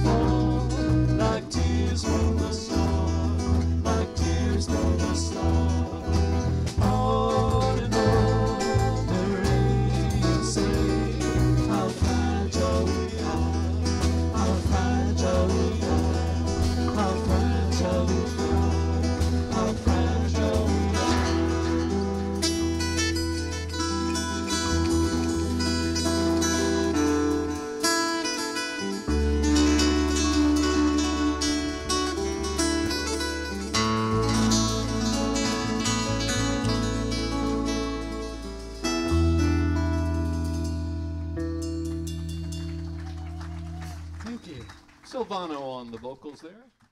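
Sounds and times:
bass guitar: 0:00.0 - 0:45.2
guitars: 0:00.0 - 0:45.5
drums: 0:00.0 - 0:45.6.

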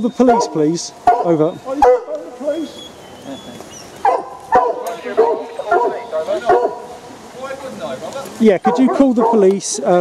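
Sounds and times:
hounds baying: 0:00.0 - 0:07.1, 0:08.6 - 0:10.0.

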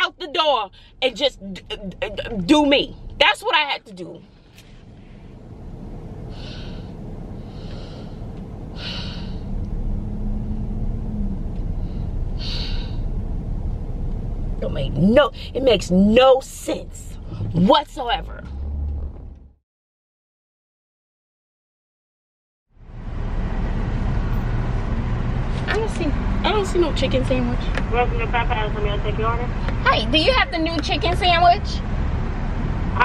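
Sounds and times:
faint steady hum: 0:00.0 - 0:18.2
car cabin rumble: 0:00.0 - 0:19.6.

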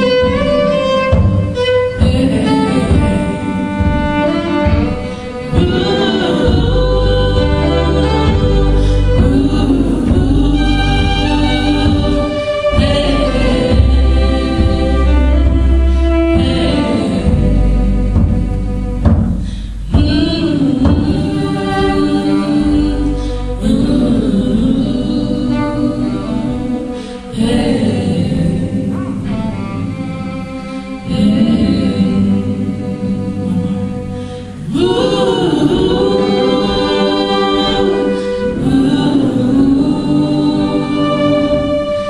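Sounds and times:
woman singing: 0:00.0 - 0:18.9, 0:19.5 - 0:42.0.

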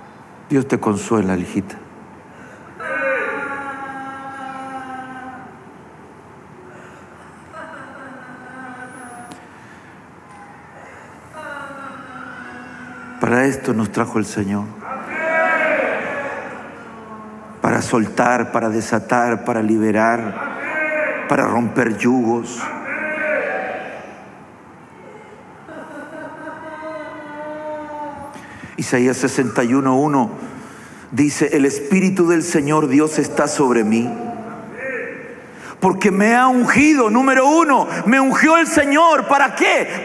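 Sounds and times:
echo in large hall: 0:00.0 - 0:40.0
man's voice over loudspeaker: 0:00.5 - 0:01.9, 0:13.2 - 0:15.0, 0:17.6 - 0:23.5, 0:28.8 - 0:40.0.

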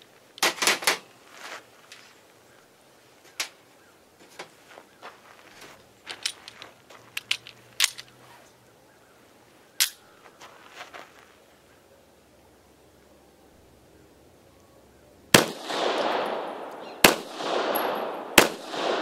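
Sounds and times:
pistol metallic clicks: 0:06.1 - 0:08.2, 0:09.8 - 0:10.0, 0:15.4 - 0:19.0.

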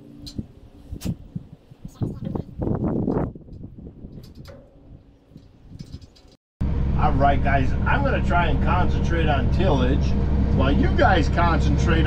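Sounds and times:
tractor engine humming: 0:03.6 - 0:12.0.

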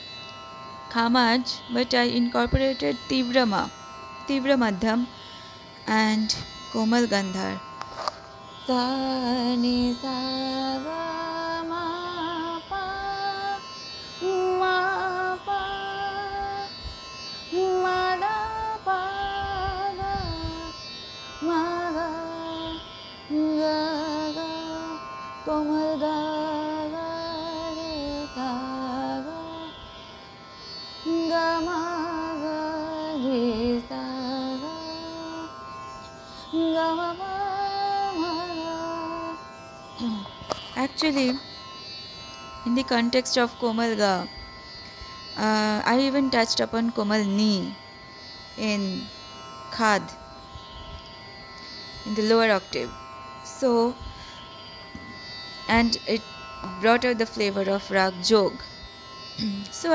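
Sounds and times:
steady drone: 0:00.0 - 0:59.9
woman singing: 0:00.9 - 0:05.1, 0:05.8 - 0:07.7, 0:08.6 - 0:16.8, 0:17.5 - 0:20.8, 0:21.4 - 0:29.9, 0:31.0 - 0:35.6, 0:36.4 - 0:41.4, 0:42.6 - 0:44.4, 0:45.4 - 0:47.8, 0:48.6 - 0:49.1, 0:49.7 - 0:50.2, 0:52.1 - 0:54.0, 0:55.7 - 0:58.7, 0:59.4 - 0:59.9.

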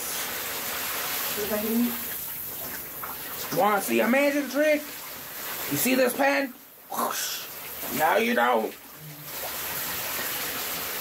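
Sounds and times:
shower spraying water: 0:00.0 - 0:11.0.

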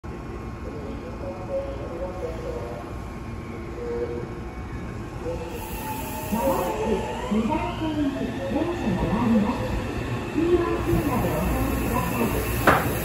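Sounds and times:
electric train rumble and hum: 0:00.1 - 0:13.0.

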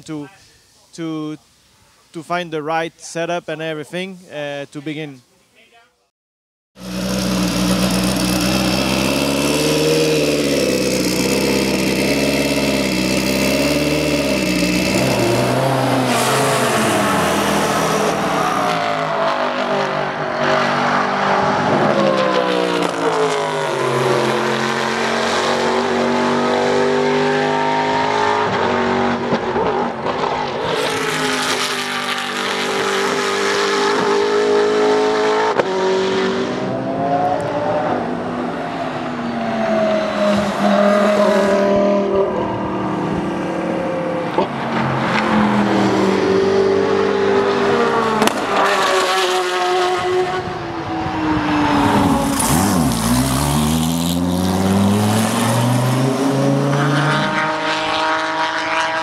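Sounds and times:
race car engines: 0:06.8 - 0:59.0.

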